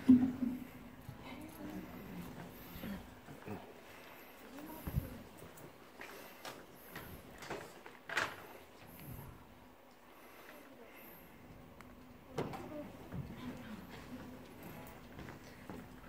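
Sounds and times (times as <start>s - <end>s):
faint murmuring voices: 0.0s - 16.0s.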